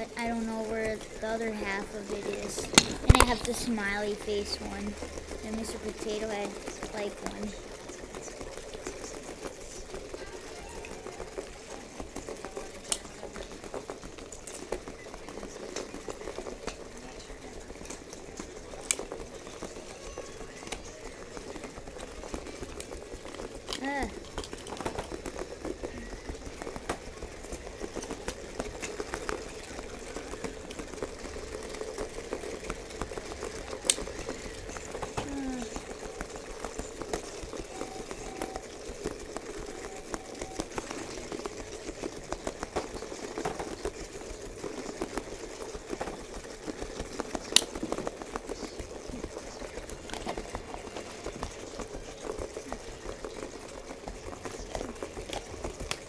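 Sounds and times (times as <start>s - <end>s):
toy motors rattling on carpet: 0.0s - 56.0s.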